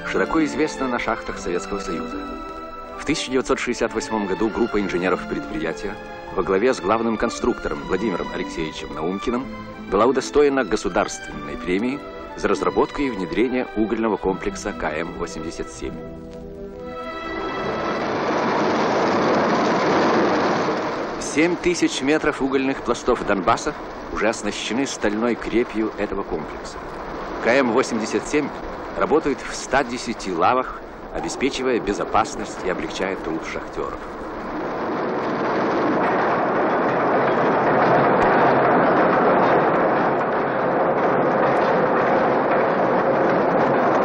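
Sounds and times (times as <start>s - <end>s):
factory machinery noise: 0.0s - 44.0s.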